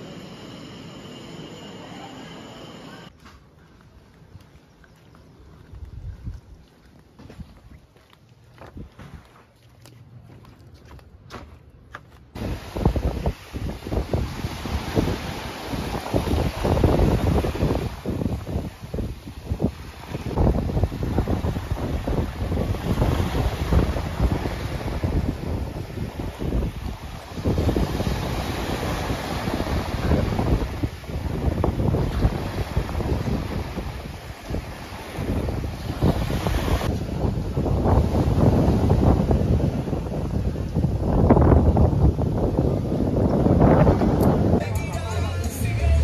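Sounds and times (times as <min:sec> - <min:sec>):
wind buffeting microphone: 0:05.6 - 0:08.0, 0:12.4 - 0:44.6
small waves washing ashore: 0:12.4 - 0:44.6.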